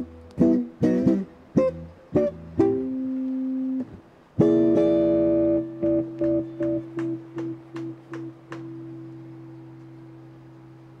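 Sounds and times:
electric guitar plucked notes: 0.0s - 10.6s.

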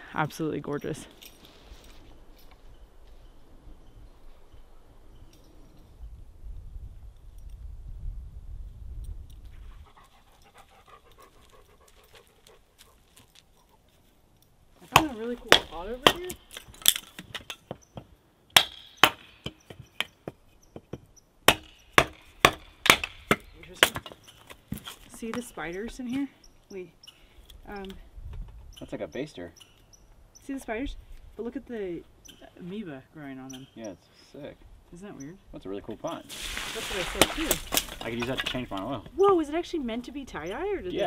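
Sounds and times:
dog sniffing and panting: 9.5s - 14.0s
hatchet splitting wood: 14.9s - 25.4s.

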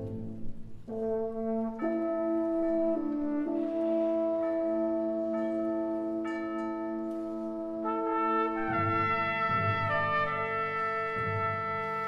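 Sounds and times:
wind band playing held brass chords: 0.0s - 12.0s.

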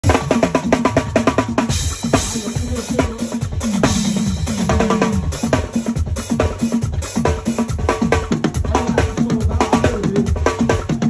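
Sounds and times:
fast drum kit pattern: 0.0s - 11.0s.

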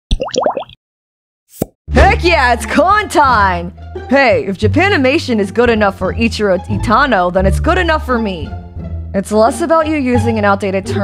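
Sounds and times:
rising cartoon bloops: 0.1s - 0.8s.

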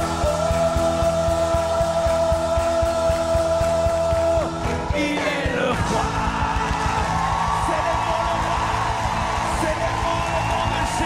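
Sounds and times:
keyboard: 0.0s - 11.0s
steady drum beat: 0.0s - 11.0s
worship band playing: 0.0s - 11.0s.

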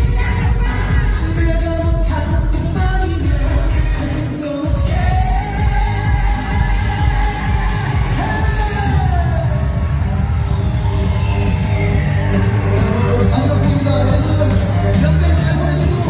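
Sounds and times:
man singing into a microphone: 0.0s - 9.8s, 12.6s - 16.0s
amplified backing music with bass: 0.0s - 16.0s.

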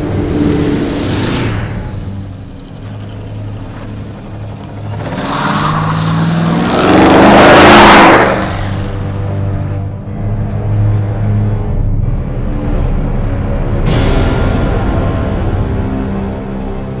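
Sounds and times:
motorcycles passing: 0.0s - 10.0s
car engine revving: 0.0s - 10.4s
low background music: 0.0s - 17.0s
wheels spinning: 2.0s - 8.3s.

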